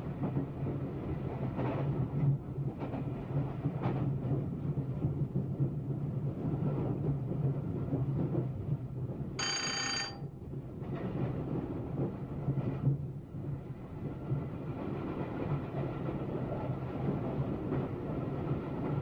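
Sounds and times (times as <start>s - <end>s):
bell-like ringing tone: 9.4s - 10.2s.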